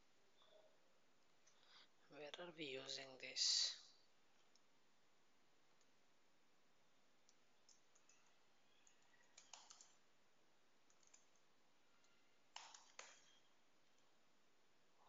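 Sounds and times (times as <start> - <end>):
keyboard keys clicking: 7.3 - 10.0, 10.9 - 11.4, 12.0 - 13.4.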